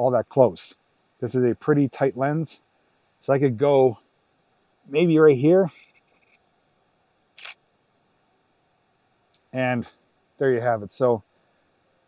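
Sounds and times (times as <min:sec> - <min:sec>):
camera shutter clack: 0:07.4 - 0:07.6.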